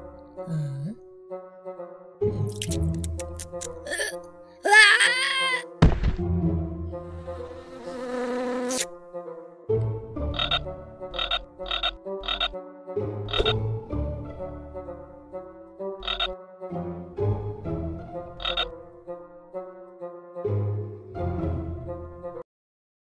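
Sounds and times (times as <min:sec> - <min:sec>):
cartoon frog croaking: 0:02.4 - 0:05.6, 0:10.3 - 0:12.6, 0:13.3 - 0:13.6, 0:16.0 - 0:16.4, 0:18.4 - 0:18.7.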